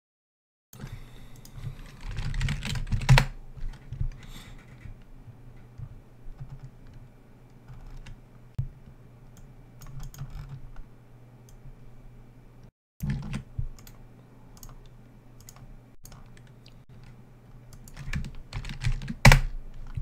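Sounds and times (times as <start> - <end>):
computer keyboard typing: 1.4 - 5.0, 5.6 - 8.2, 9.4 - 10.6, 13.0 - 14.0, 14.6 - 20.0.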